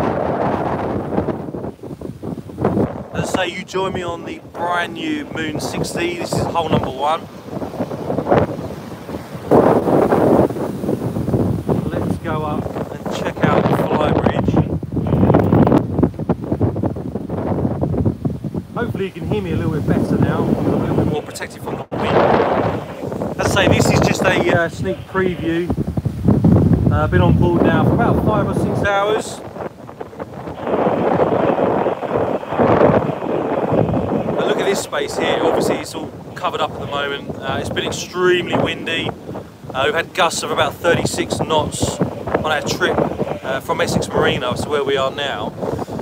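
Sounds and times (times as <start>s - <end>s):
wind buffeting microphone: 0.0s - 46.0s
man's voice: 3.2s - 7.3s, 11.7s - 15.6s, 18.8s - 25.8s, 26.9s - 29.4s, 34.4s - 39.1s, 39.7s - 45.6s.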